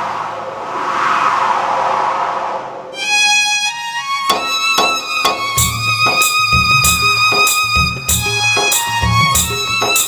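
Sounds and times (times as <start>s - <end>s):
synthesizer noise sweep whoosh: 0.0s - 3.1s.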